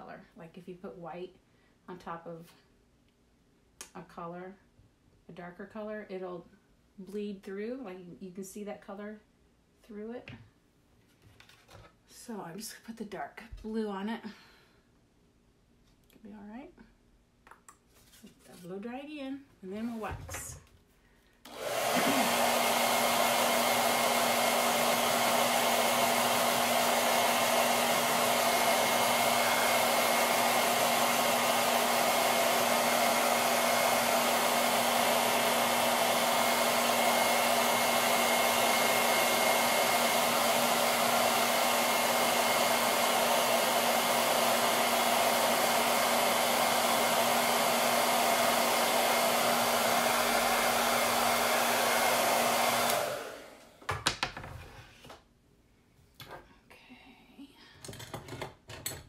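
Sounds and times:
hair dryer running: 0:21.4 - 0:54.0.

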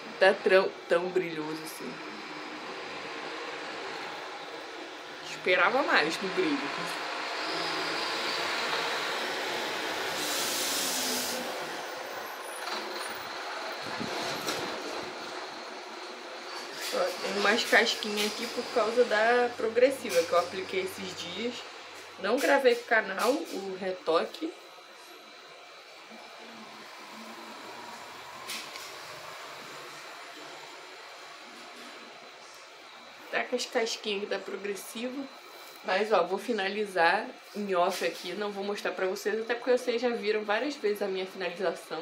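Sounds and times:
air brakes hissing: 0:09.2 - 0:13.2.

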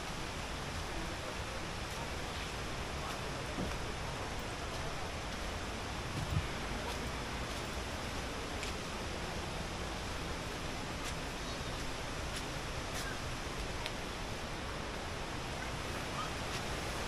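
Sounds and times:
outdoor background hiss: 0:00.0 - 0:17.0.

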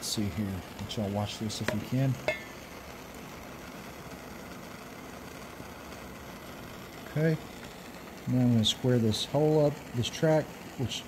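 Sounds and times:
hot iron sizzling on wood: 0:00.0 - 0:11.0.

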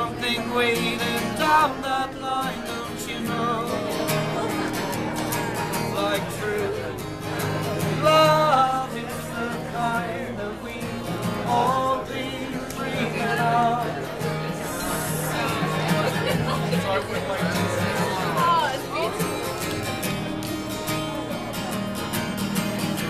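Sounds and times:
man singing: 0:00.0 - 0:04.5, 0:05.8 - 0:15.8
strummed acoustic guitar: 0:00.0 - 0:23.0.

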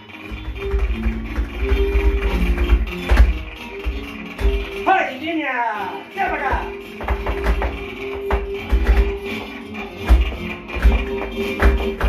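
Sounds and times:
flamenco guitar music: 0:00.0 - 0:12.0
shoes tapping on canvas floor: 0:00.3 - 0:04.8, 0:06.2 - 0:12.0.

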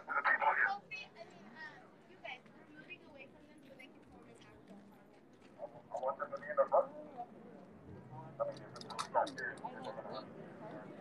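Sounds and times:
crowd talking indistinctly: 0:00.0 - 0:11.0.

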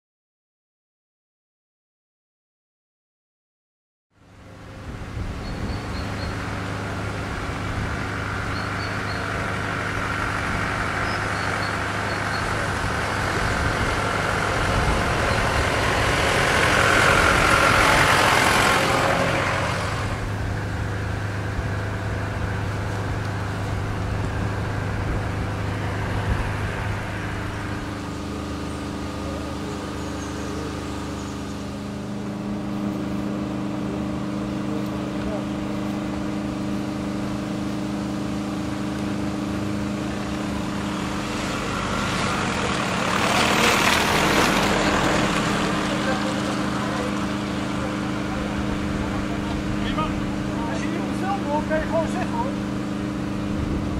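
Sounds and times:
broad noise swell: 0:04.2 - 0:53.9
excavator diesel engine running: 0:04.2 - 0:53.9.

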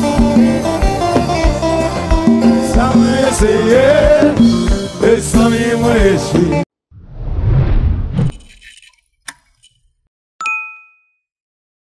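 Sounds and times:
noisy swish: 0:07.0 - 0:08.7
bright bell ding: 0:10.4 - 0:11.3.

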